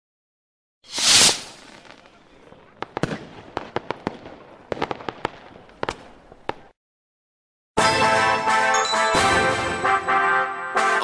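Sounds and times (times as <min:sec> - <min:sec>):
faint hiss: 0:00.9 - 0:02.2
firework pops and cracks: 0:00.9 - 0:02.2, 0:02.8 - 0:06.7.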